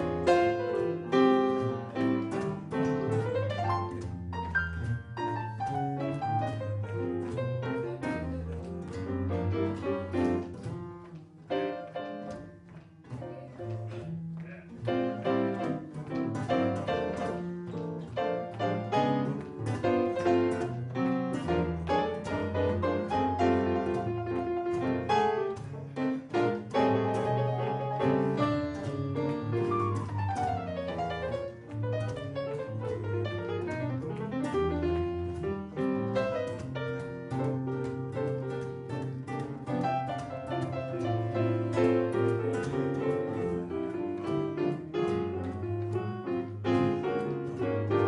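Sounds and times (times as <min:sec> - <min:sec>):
jazz piano: 0:00.0 - 0:48.0.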